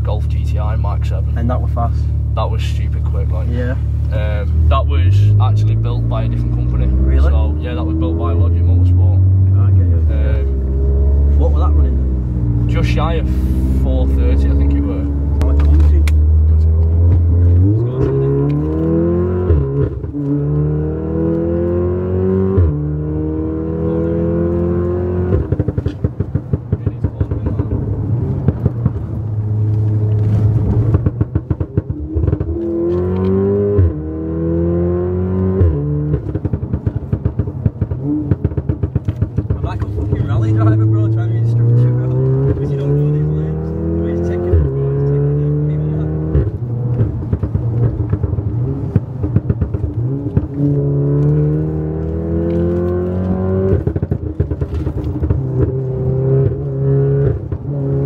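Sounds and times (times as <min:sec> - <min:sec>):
car engine accelerating: 0:00.0 - 0:58.0
exhaust crackling: 0:00.0 - 0:58.0.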